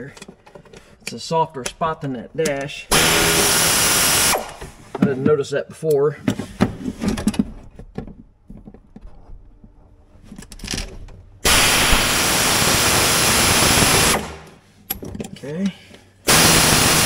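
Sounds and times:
air ratchet hissing: 0:16.3 - 0:17.0.

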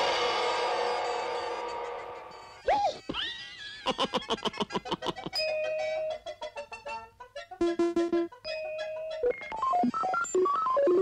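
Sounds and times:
cartoon cat laughing: 0:02.7 - 0:06.5.

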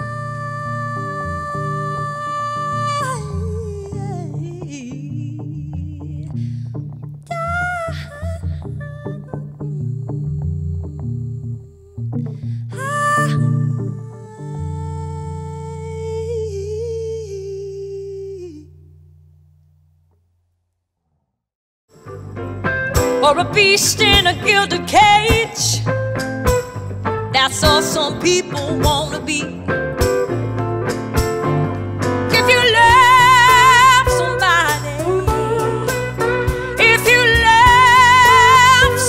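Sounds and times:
plucked electric bass: 0:00.0 - 0:20.0, 0:22.0 - 0:39.0.

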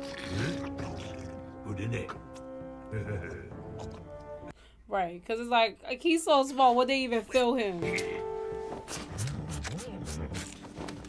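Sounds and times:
orchestral chords: 0:07.8 - 0:09.6.

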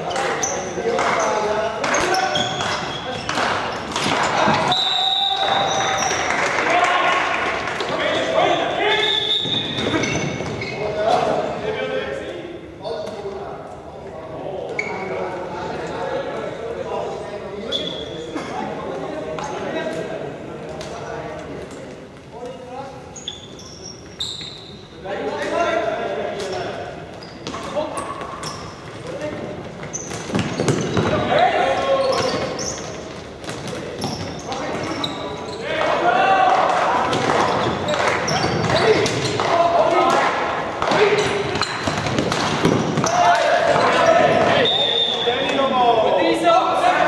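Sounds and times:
players shouting: 0:35.5 - 0:41.7, 0:42.4 - 0:47.0.

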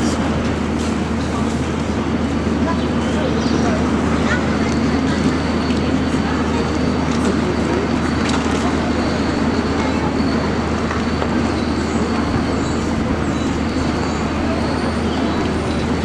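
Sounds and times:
traffic rumble: 0:00.0 - 0:16.0.

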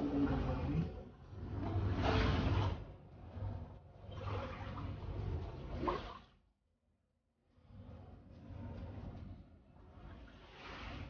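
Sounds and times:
broom pushing water across floor: 0:01.4 - 0:06.3, 0:10.1 - 0:11.0.

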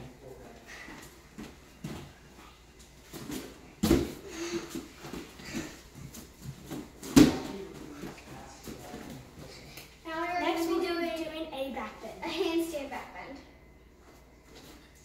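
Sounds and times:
bare feet thudding on gym mat: 0:03.1 - 0:09.0
loud landings on mat: 0:03.8 - 0:04.2, 0:07.0 - 0:07.6.

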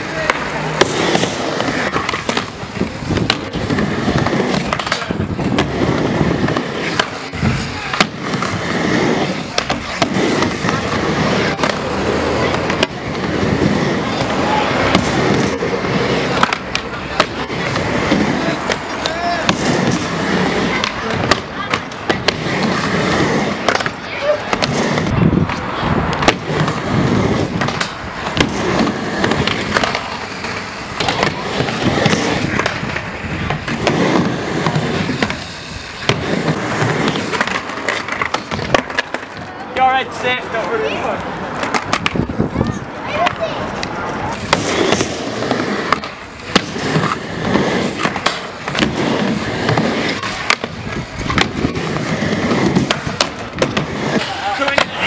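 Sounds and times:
skateboard clacking on ramp: 0:00.0 - 0:39.5, 0:41.6 - 0:55.0
skateboard wheels rolling on wood: 0:00.0 - 0:55.0.

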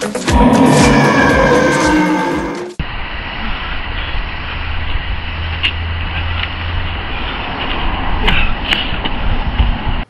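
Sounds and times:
low rumble: 0:00.2 - 0:07.3.

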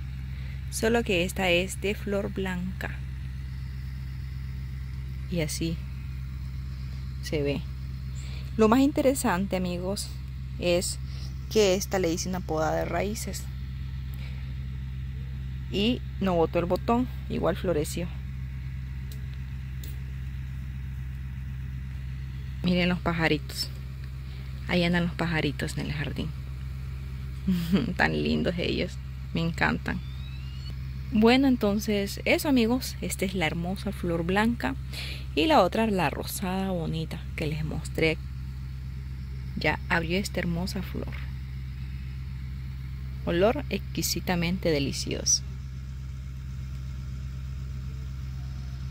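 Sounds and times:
low engine hum: 0:00.0 - 0:48.9
faint high chirps: 0:29.8 - 0:30.8.

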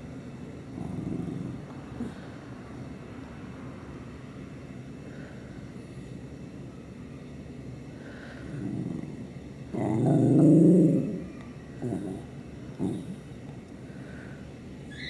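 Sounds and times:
dog grumbling: 0:00.7 - 0:02.3, 0:08.4 - 0:13.3.

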